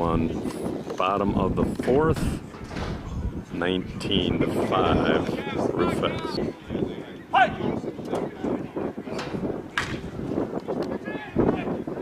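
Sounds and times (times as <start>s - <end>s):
outdoor noise: 0.0s - 12.0s
softball bat hitting ball: 9.7s - 10.1s.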